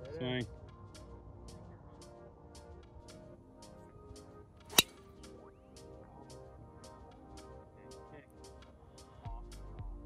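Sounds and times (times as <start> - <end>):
background music with steady beat: 0.0 - 10.0
golf club striking ball: 4.7 - 5.1.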